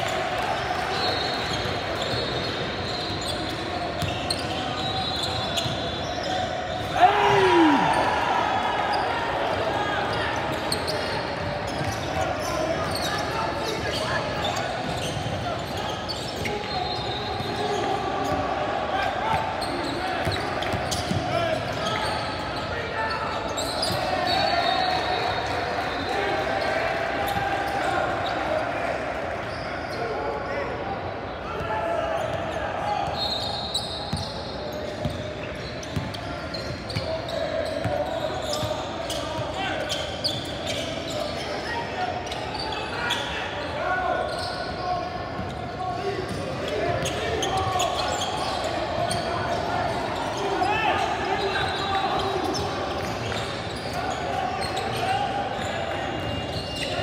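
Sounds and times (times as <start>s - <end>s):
people calling out and chattering: 0.0s - 57.0s.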